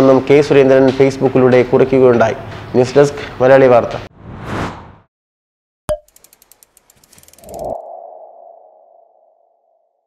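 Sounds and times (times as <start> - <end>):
mechanical ratchet ticks: 6.0 - 7.8
ringing tone: 7.4 - 10.0.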